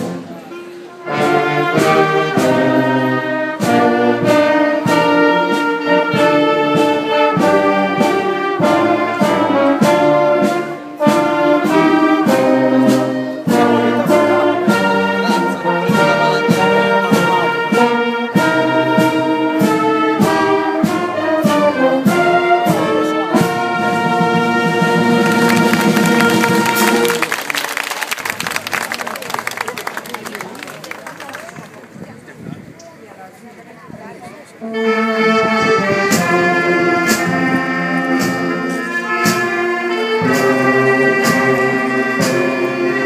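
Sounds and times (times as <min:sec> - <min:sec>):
brass band playing slow chords: 0:00.0 - 0:27.6, 0:34.6 - 0:43.0.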